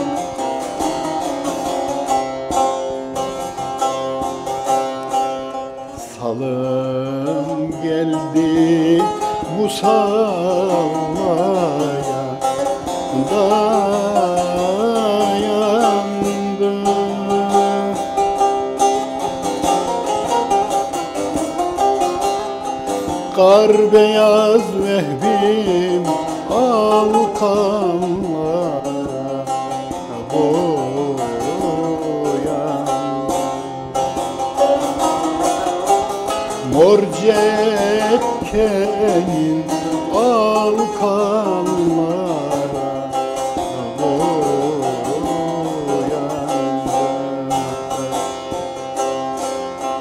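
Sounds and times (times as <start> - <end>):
long-necked lute plucking: 0.0 - 50.0
man singing folk song: 0.0 - 50.0.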